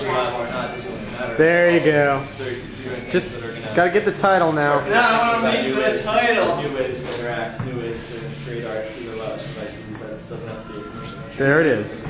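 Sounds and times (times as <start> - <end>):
eraser rubbing on blackboard: 0.0 - 10.6.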